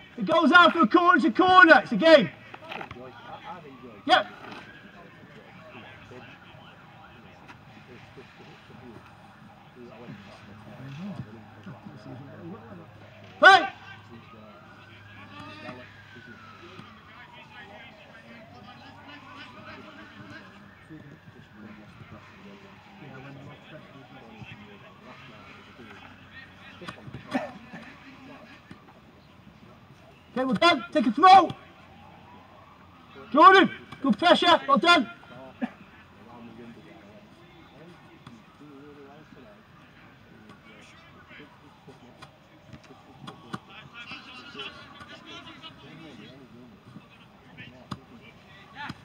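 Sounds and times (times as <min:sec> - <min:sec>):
distant voices: 0:00.0 - 0:49.0
faint emergency siren wailing: 0:00.0 - 0:49.0.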